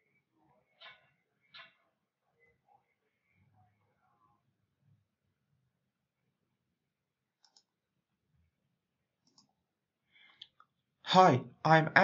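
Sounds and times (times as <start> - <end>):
computer mouse clicks: 7.4 - 7.8, 9.2 - 9.5.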